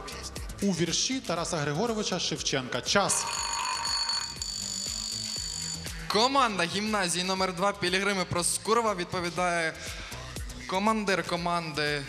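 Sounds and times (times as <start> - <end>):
sustained high electronic tones: 3.1 - 6.1.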